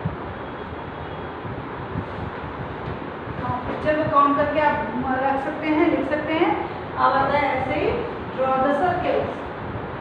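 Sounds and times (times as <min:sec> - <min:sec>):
steady hum and hiss: 0:00.0 - 0:10.0.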